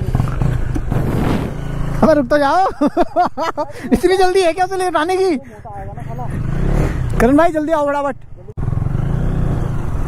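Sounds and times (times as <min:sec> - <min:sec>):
motorcycle engine rumble: 0:00.0 - 0:10.0.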